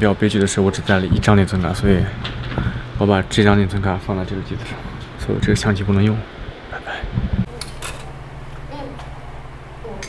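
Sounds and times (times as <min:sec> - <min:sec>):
person speaking: 0:00.0 - 0:07.6
steady low hum: 0:00.0 - 0:10.0.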